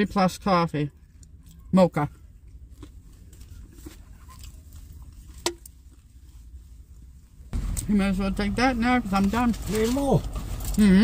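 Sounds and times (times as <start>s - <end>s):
van cabin low rumble: 0.0s - 11.0s.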